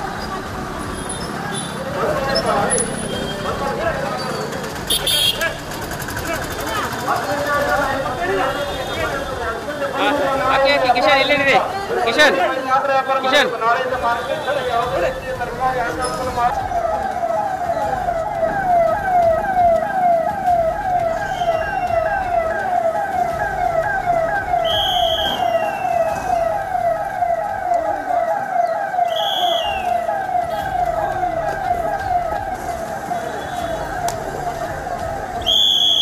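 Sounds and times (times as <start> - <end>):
police siren yelping: 14.5 - 36.0
shrill whistle blasts: 24.6 - 26.5, 29.0 - 30.0, 35.4 - 36.0.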